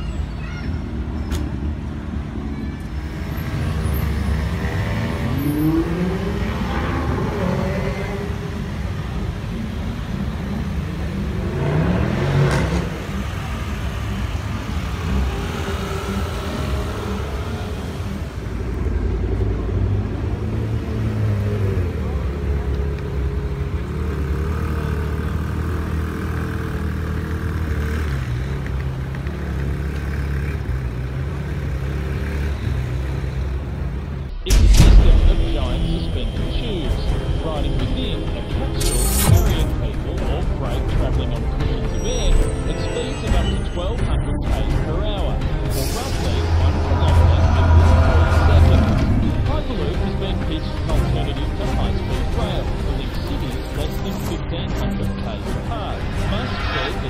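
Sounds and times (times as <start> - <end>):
sports car engines revving: 0.9 - 41.8, 42.5 - 57.0.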